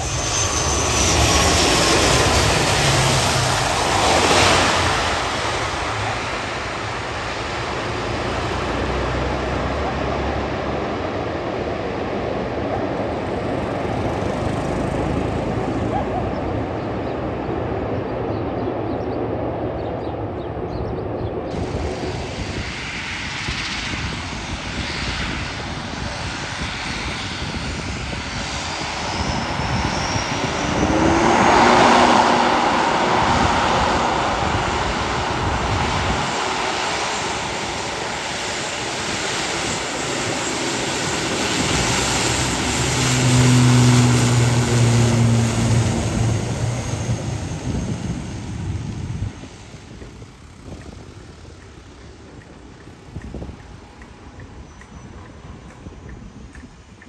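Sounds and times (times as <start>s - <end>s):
turboprop engines running: 0.0s - 57.0s.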